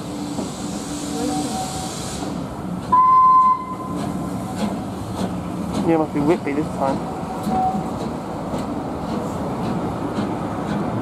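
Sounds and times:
steam hiss: 0.0s - 2.5s
train coaches rolling past: 0.0s - 11.0s.

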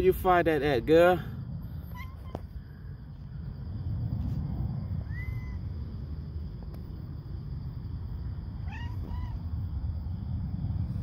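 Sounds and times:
steady low rumble: 0.0s - 11.0s
cat meowing: 1.9s - 2.5s, 5.0s - 5.7s, 8.6s - 9.5s.

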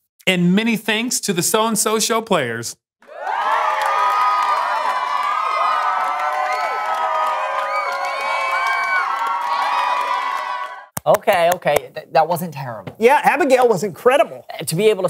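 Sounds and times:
crowd cheering and whooping: 3.0s - 10.9s.

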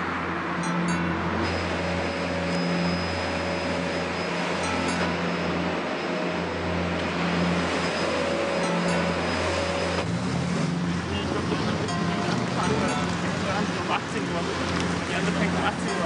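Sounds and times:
street traffic: 0.0s - 16.0s.

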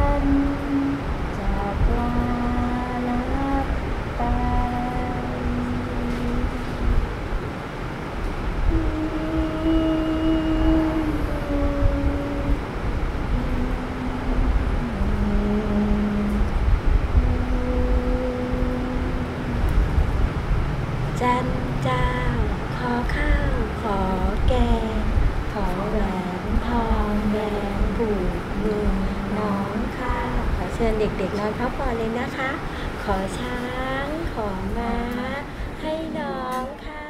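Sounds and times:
person humming: 0.0s - 7.0s, 8.6s - 20.2s, 21.2s - 37.0s
low rumble: 0.0s - 36.2s.

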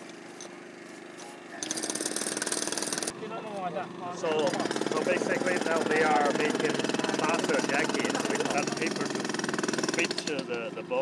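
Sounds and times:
power tool hammering: 1.6s - 3.2s, 3.9s - 11.0s.

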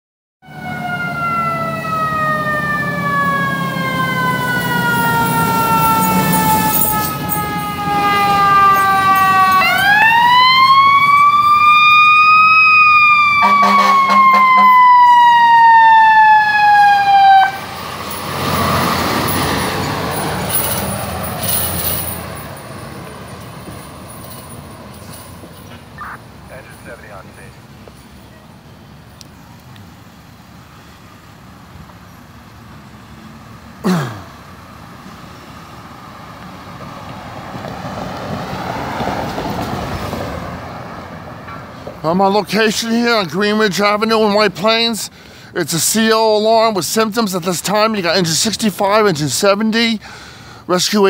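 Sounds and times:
fire truck siren wailing: 0.4s - 22.1s, 25.6s - 27.5s
truck engine passing: 0.4s - 50.7s.

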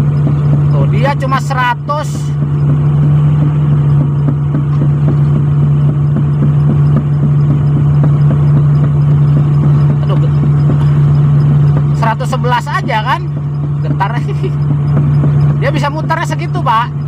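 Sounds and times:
excavator diesel engine running: 0.0s - 17.0s.

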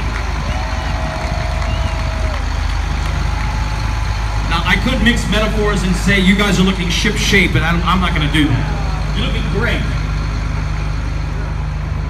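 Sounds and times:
diesel truck engine passing: 0.0s - 12.0s.

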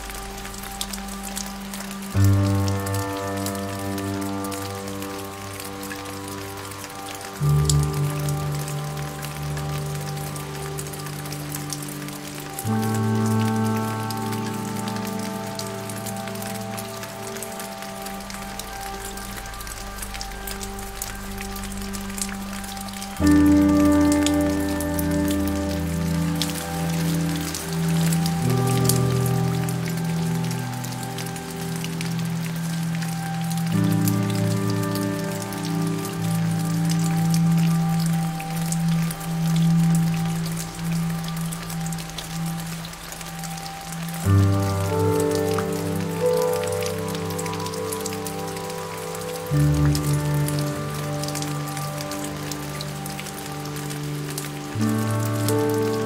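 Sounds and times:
soft slow piano music: 0.0s - 56.0s
steady rain falling: 0.0s - 56.0s.

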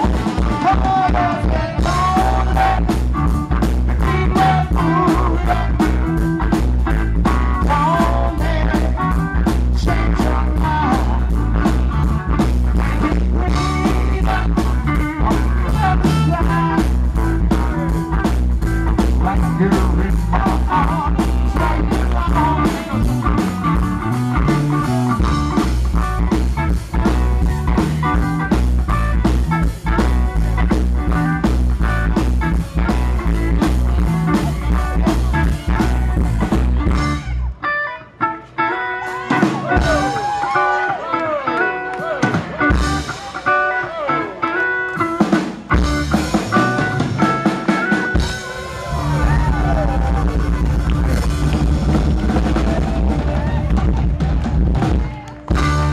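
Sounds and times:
drum kit: 0.0s - 37.4s, 39.0s - 40.6s, 42.0s - 44.1s, 44.9s - 55.9s
electric bass: 0.0s - 40.6s, 41.3s - 55.9s
electric guitar: 0.0s - 55.9s.

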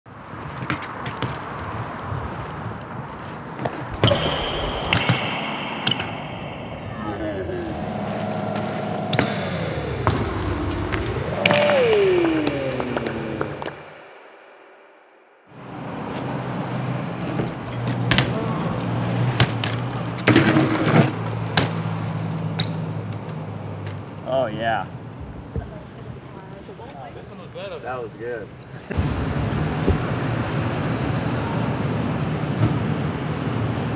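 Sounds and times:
bike tyres rolling on asphalt: 0.1s - 4.6s
steady low hum: 3.9s - 13.7s
gliding pitched tone: 3.9s - 14.8s
bike landing clacks and knocks: 17.3s - 22.8s.

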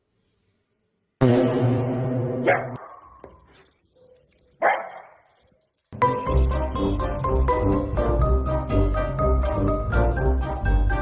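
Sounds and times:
dog barking: 2.4s - 3.2s, 4.0s - 5.2s.

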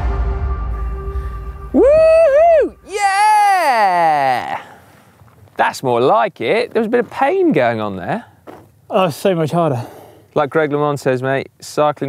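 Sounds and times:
man groaning: 1.8s - 4.8s
man yelling: 1.8s - 4.8s.

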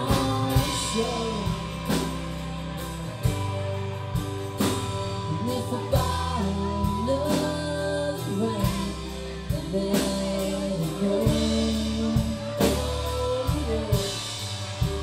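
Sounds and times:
person singing: 0.0s - 2.3s, 5.2s - 15.0s
country band playing: 0.0s - 15.0s.

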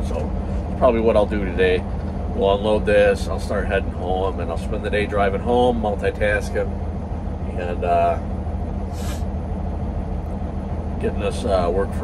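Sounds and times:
diesel engine idling: 0.0s - 12.0s
short hiss: 8.9s - 9.3s.

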